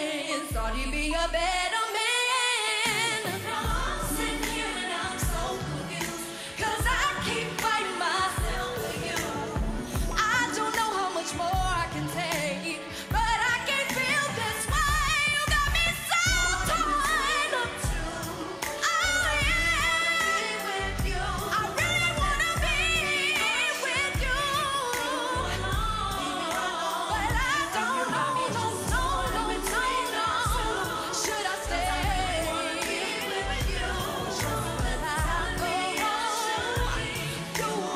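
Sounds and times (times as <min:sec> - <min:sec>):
woman singing into microphone: 0:00.0 - 0:37.9.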